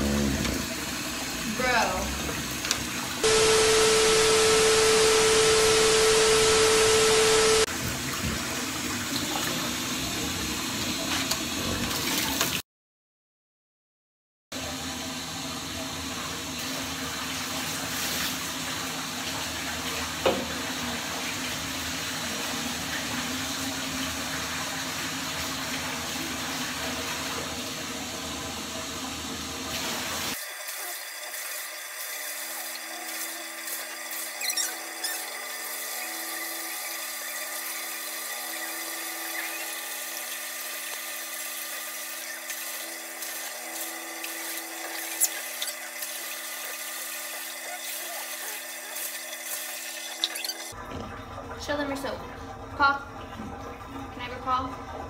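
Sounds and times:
water running from a tap: 0.0 - 3.2, 7.7 - 12.6, 14.6 - 55.0
steady hum: 3.2 - 7.7.

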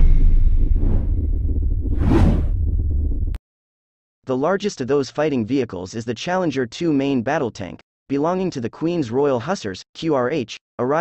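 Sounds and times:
low rumble: 0.0 - 3.4
whoosh: 0.0 - 3.4.

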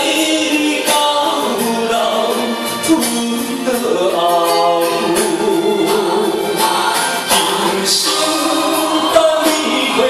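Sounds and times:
karaoke backing track: 0.0 - 10.0.

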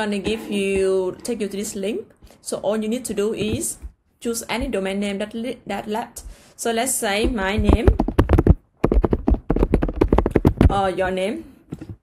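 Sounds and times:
fast typing on a keyboard: 7.6 - 10.8.

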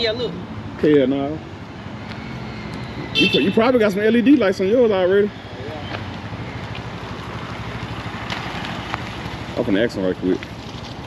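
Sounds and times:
motorcycle engine passing: 0.9 - 11.0.

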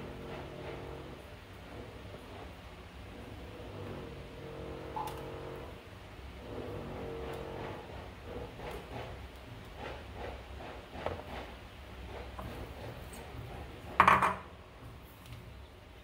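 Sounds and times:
knock: 14.0 - 14.4.

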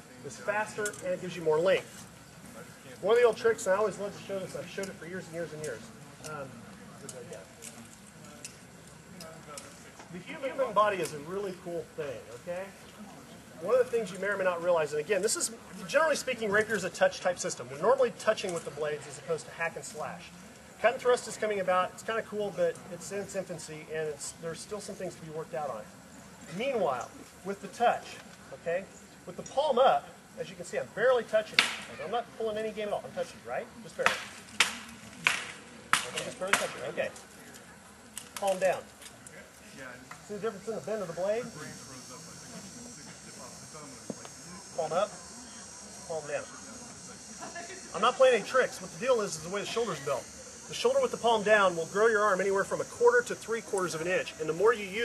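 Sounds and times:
faint voices: 0.0 - 55.0.

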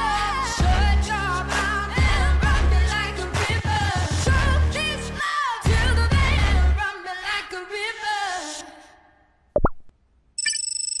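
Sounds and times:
cartoon pop: 9.6 - 9.9
high electronic trilling tone: 10.4 - 11.0.

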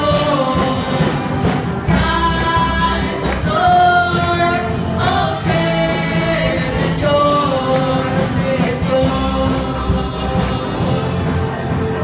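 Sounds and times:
man singing: 0.0 - 4.4, 5.5 - 11.6
drums: 0.0 - 12.0
electric guitar: 0.0 - 12.0
woman singing: 1.9 - 11.3.

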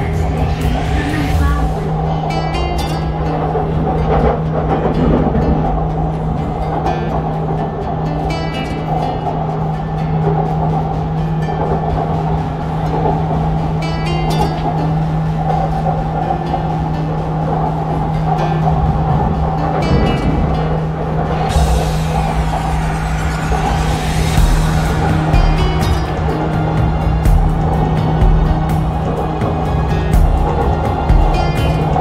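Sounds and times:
plucked string music: 0.0 - 32.0
track rumble: 0.0 - 32.0
train humming: 0.0 - 32.0.

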